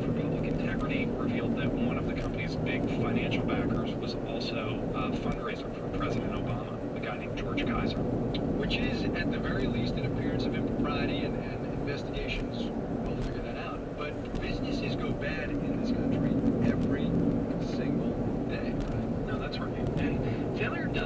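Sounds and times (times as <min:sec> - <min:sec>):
car road and engine rumble: 0:00.0 - 0:21.0
faint talk radio: 0:00.0 - 0:21.0.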